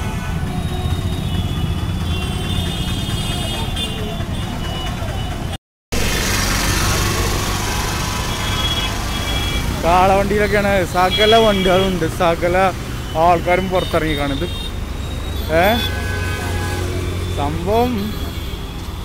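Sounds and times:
traffic rumble: 0.0 - 19.0.

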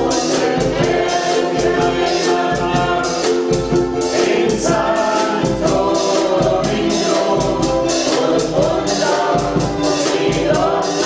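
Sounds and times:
people singing in unison: 0.0 - 11.0
ukuleles strumming: 0.0 - 11.0.

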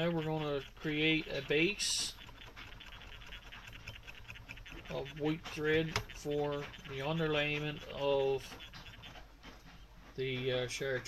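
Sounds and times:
thread wrapping scratchy ticking: 0.0 - 11.0.

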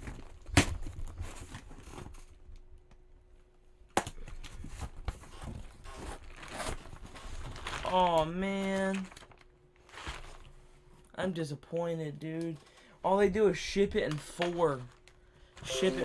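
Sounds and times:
cardboard and plastic rustling: 0.0 - 2.9, 4.2 - 11.1.

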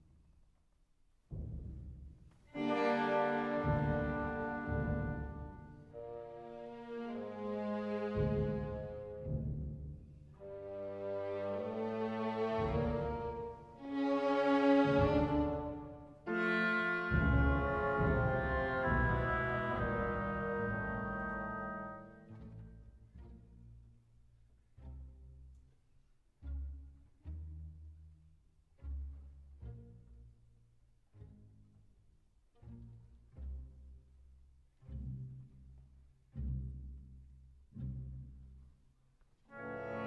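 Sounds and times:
orchestral brass chords: 2.6 - 8.3, 10.4 - 22.4, 39.5 - 40.0
timpani roll: 14.6 - 21.8.

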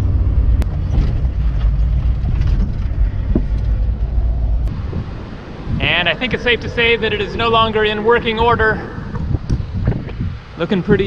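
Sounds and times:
car driving interior rumble: 0.0 - 10.6.

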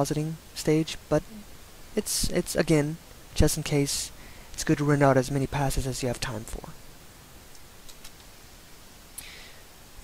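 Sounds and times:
room tone hiss: 0.0 - 10.0
faint soft clicks: 7.5 - 8.3.

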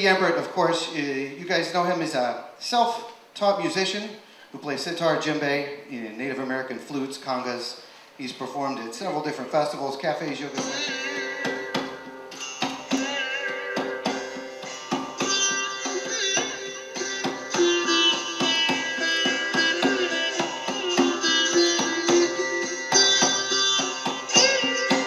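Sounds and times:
sitar playing: 10.4 - 25.0
hand drum: 10.5 - 25.0.

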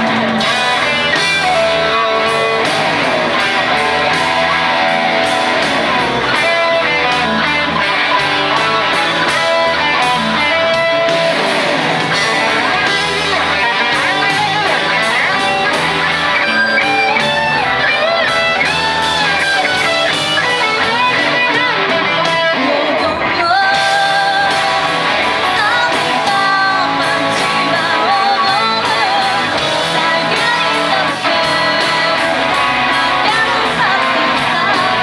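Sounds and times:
lead guitar bending: 0.0 - 35.0
live rock band playing: 0.0 - 35.0.

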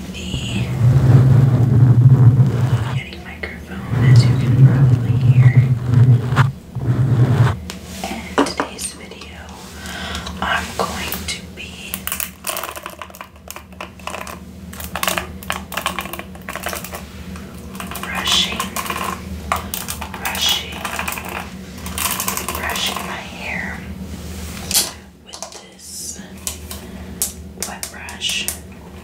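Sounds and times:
soft whispering: 0.0 - 9.7, 10.3 - 12.1, 17.8 - 19.1, 20.1 - 21.5, 22.4 - 23.9, 25.2 - 26.4, 27.6 - 28.7.

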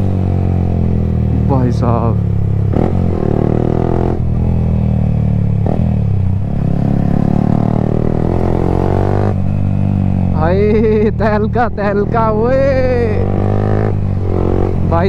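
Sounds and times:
motorcycle exhaust revving: 0.0 - 15.0.

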